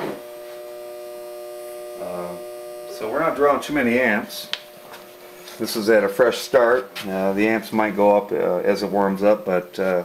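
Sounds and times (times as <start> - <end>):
battery charger electrical hum: 0.0 - 10.0.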